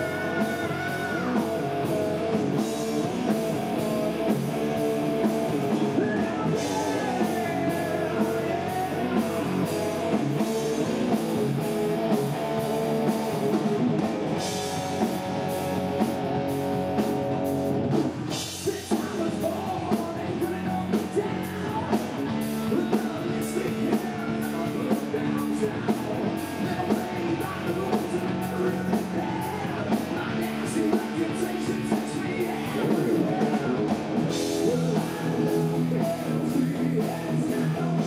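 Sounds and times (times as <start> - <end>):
man singing: 0.0 - 13.7, 18.3 - 38.0
bass guitar: 0.0 - 38.0
distorted electric guitar: 0.0 - 38.0
drums: 0.0 - 38.0.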